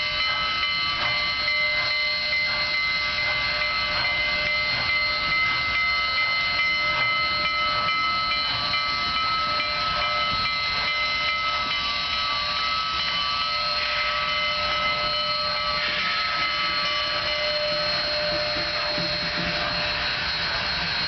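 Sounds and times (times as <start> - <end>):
locomotive bell ringing: 0.0 - 21.0
steam hissing: 0.0 - 21.0
steam locomotive exhaust chuffs: 0.0 - 21.0.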